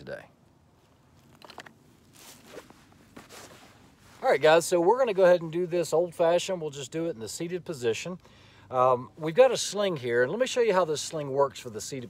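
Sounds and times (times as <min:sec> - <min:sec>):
soft rustle: 0:00.4 - 0:05.5.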